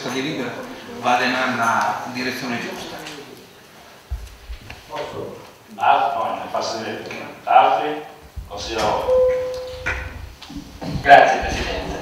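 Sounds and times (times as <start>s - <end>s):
steady electronic tone: 9.0s - 10.2s.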